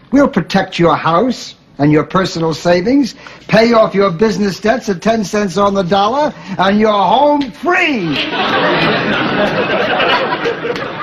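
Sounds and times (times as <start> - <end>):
audience laughing: 8.0 - 11.0.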